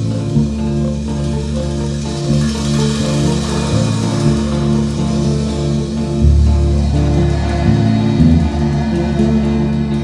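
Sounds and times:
bass guitar: 0.0s - 10.0s
electric guitars: 0.0s - 10.0s.

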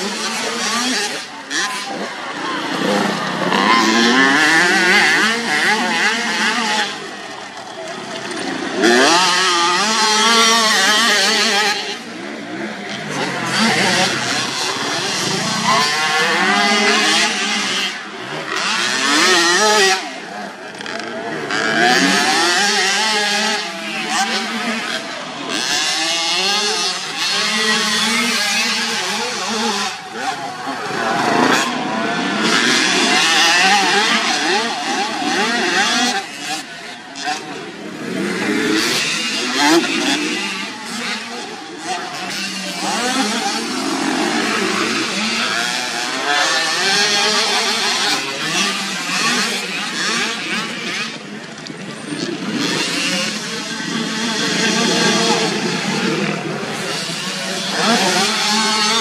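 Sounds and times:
small motorbike engine revving: 0.0s - 59.0s.

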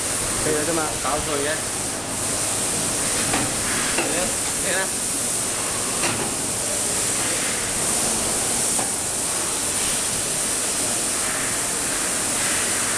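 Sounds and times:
loud steady hiss: 0.0s - 12.9s.

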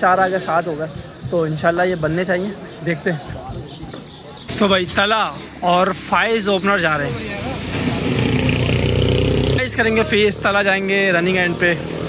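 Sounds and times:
vehicle engine droning: 4.5s - 12.0s.

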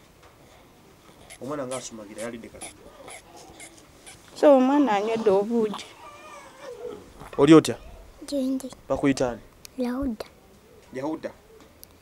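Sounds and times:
baby whimpering: 1.2s - 4.2s, 5.8s - 7.0s
baby crying: 2.2s - 3.8s, 5.8s - 6.8s.

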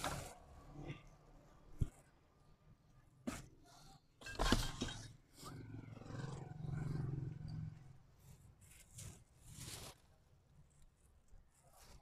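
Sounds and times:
plastic bags rustling: 8.5s - 10.2s.

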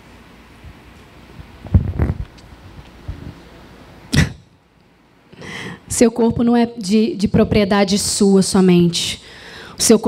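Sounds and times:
noise burst on microphone: 0.6s - 3.6s.

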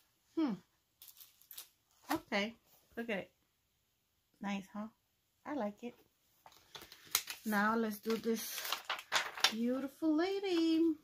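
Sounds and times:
paper sheet rustling: 6.5s - 9.9s.

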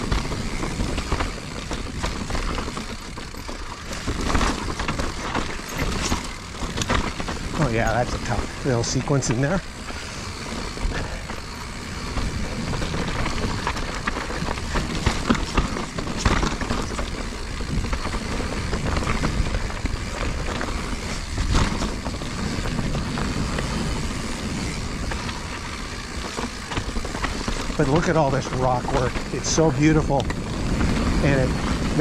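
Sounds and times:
bike rattling and knocking: 0.0s - 32.0s
rush of tyre and wind noise: 0.0s - 32.0s.

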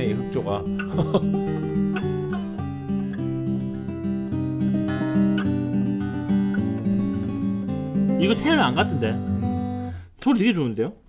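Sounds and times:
fingerstyle acoustic guitar: 0.0s - 10.1s.

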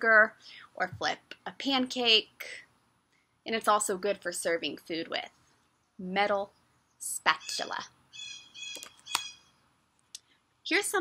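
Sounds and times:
bird chirping: 5.8s - 9.7s.

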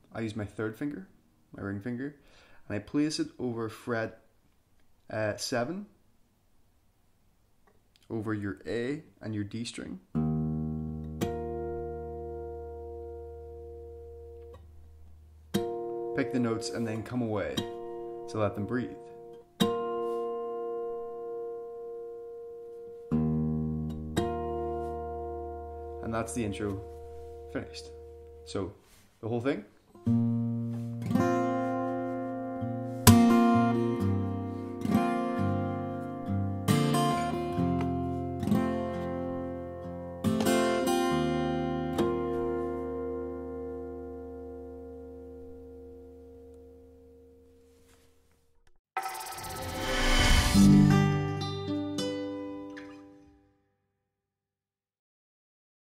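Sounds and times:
loud outro music: 49.0s - 51.7s
acoustic guitar harmonics ringing: 49.0s - 53.2s.

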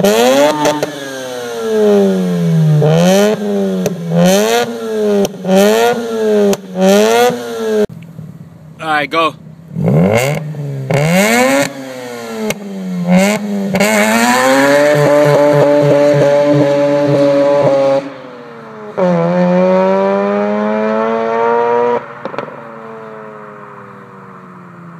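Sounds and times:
rotary engine revving: 9.7s - 18.3s.

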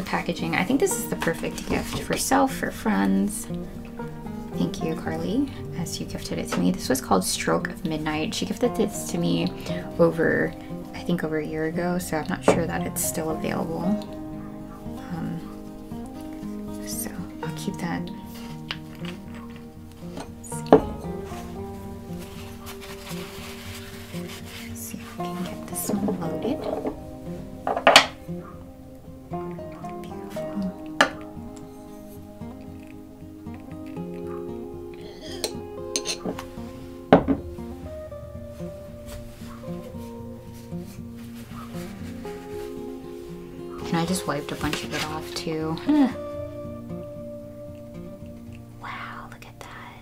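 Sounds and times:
background music: 0.0s - 50.0s
glass and metal clinks: 35.4s - 36.4s.

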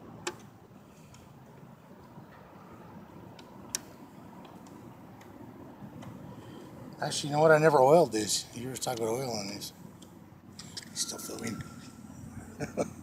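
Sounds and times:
faint background noise: 0.0s - 13.0s.

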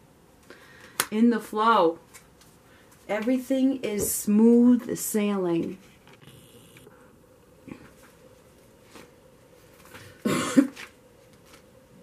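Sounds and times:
faint steady hum: 0.0s - 12.0s
woman coughing: 10.2s - 10.8s.

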